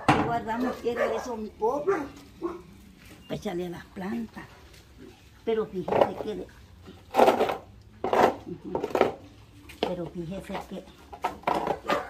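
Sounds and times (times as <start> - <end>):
plastic shovel scraping wet mud: 5.5 - 12.0.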